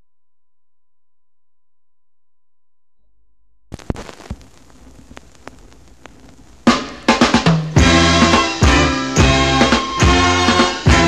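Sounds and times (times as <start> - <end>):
vinyl crackly hiss: 3.7 - 7.9
vinyl record pops: 3.7 - 7.9.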